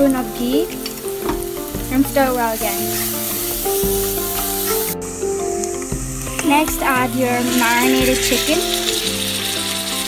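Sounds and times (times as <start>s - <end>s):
background music of held tones: 0.0s - 10.0s
onion sizzling in hot oil: 0.0s - 10.0s
wooden spoon stirring in pan: 0.0s - 10.0s.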